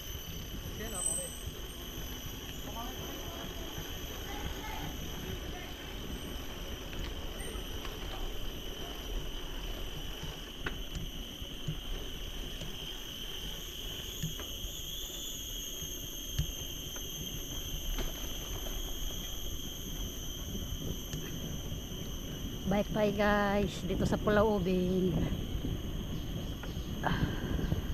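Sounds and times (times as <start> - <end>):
bicycle tyres on asphalt: 0.0 - 27.9
forest insects droning: 0.0 - 27.9
bike clicks: 0.2 - 22.4
wind rumble: 16.0 - 27.9.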